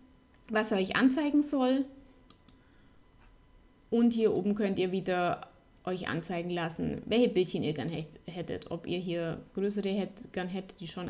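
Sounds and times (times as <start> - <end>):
faint computer mouse clicks: 2.2 - 2.6.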